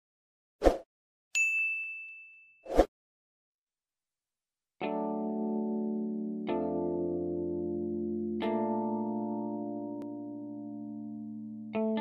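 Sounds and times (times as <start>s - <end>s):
bright bell ding: 1.4s - 2.6s.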